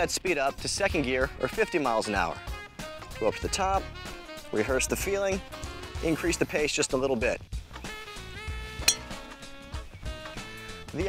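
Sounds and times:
background music: 0.0s - 11.0s
golf club striking ball: 8.8s - 9.4s.

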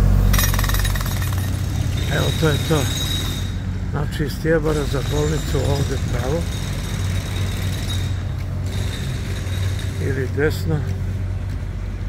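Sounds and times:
road traffic: 0.0s - 12.0s
vehicle engine rumbling: 0.0s - 12.0s.

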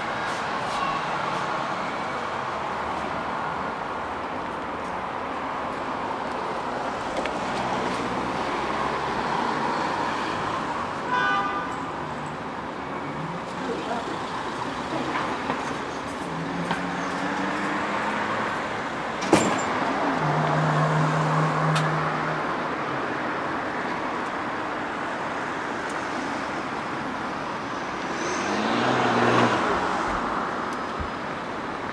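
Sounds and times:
passing cars hum: 0.0s - 31.9s
loud vehicle passing: 28.0s - 30.4s.

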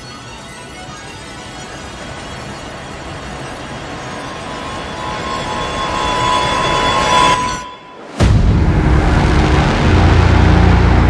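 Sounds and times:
noise music hiss and rumble: 0.0s - 11.0s
steady tone: 0.6s - 11.0s.

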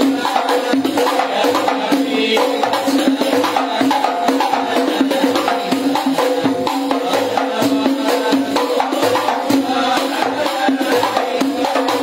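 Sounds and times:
hand-beaten frame drums: 0.0s - 12.0s
person chanting through microphone: 0.0s - 12.0s.

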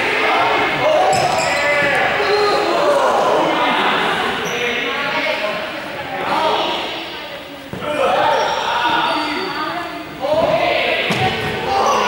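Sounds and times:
ball bouncing on gym floor: 10.4s - 11.6s.

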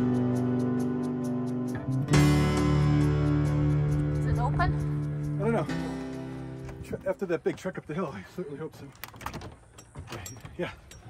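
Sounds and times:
metal door latch clicking and rattling: 8.9s - 11.0s.

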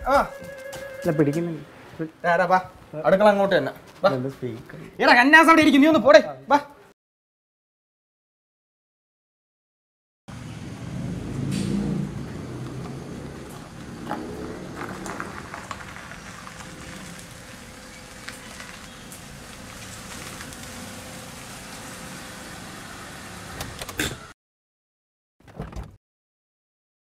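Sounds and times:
car engine driving slowly: 10.3s - 23.8s.

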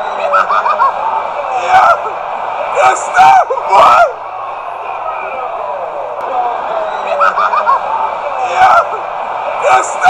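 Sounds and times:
men shouting and whooping: 0.0s - 10.0s
stadium crowd noise: 0.0s - 10.0s.

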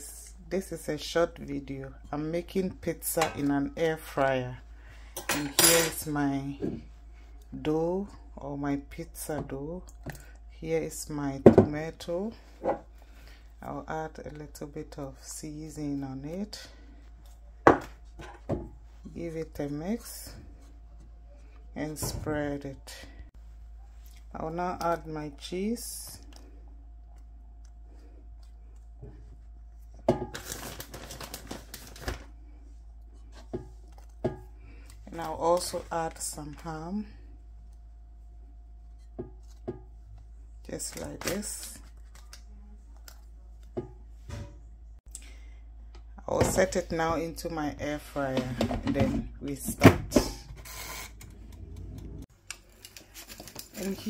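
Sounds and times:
crinkly parchment rustle: 30.3s - 32.4s, 52.5s - 54.0s
air fryer fan humming: 45.6s - 53.9s.

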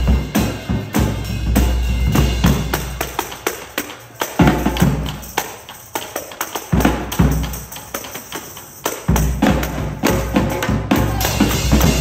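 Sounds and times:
marching bass drum hits: 0.0s - 3.0s
tambourine jingling: 0.0s - 12.0s.

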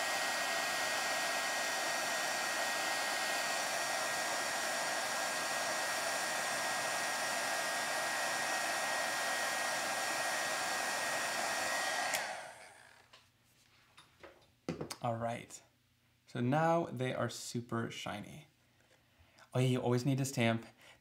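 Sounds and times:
heat gun blower hissing: 0.0s - 13.0s.

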